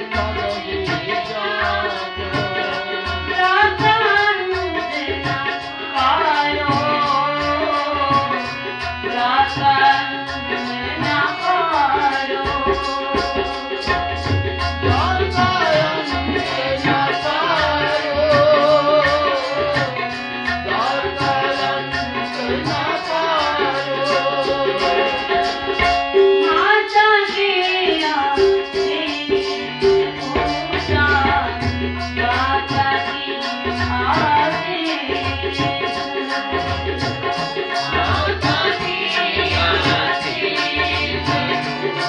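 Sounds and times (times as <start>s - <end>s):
woman singing with vibrato: 0.0s - 8.4s, 9.0s - 13.5s, 14.9s - 20.0s, 20.7s - 25.7s, 26.4s - 36.5s, 37.8s - 41.6s
harmonium chords: 0.0s - 42.0s
tabla rhythm: 0.0s - 42.0s.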